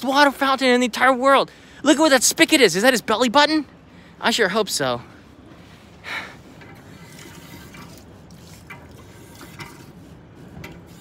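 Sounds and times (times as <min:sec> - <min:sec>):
water splashing on metal grate: 0:06.9 - 0:10.0.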